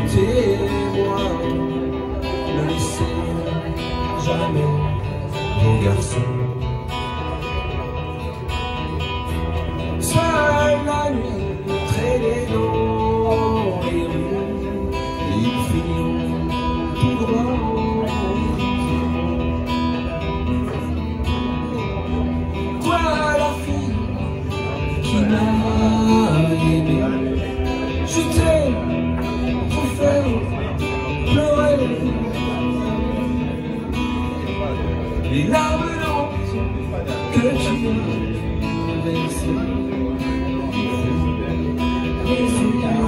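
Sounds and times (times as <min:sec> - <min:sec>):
acoustic guitar through speaker: 0:00.0 - 0:43.0.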